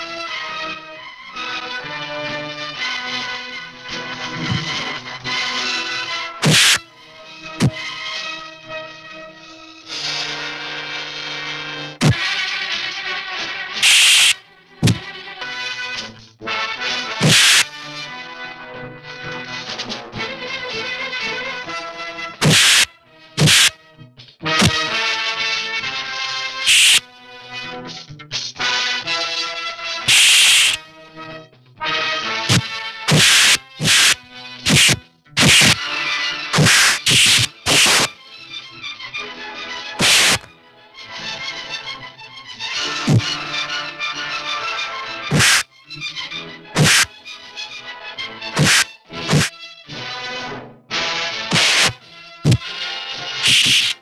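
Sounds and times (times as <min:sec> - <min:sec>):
film score music: 0:00.1 - 0:10.4
punch sound effect: 0:04.4 - 0:04.8, 0:06.4 - 0:06.8, 0:13.8 - 0:15.0, 0:17.2 - 0:17.7, 0:22.4 - 0:23.7, 0:24.6 - 0:24.8, 0:32.5 - 0:35.8, 0:36.6 - 0:38.1, 0:40.0 - 0:40.5, 0:45.3 - 0:45.6, 0:46.8 - 0:47.1, 0:48.6 - 0:49.5.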